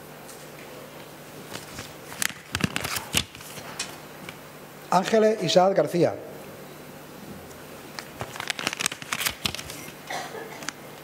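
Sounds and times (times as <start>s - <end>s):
paper crackling and rustling: 1.5s - 3.7s, 8.0s - 10.0s.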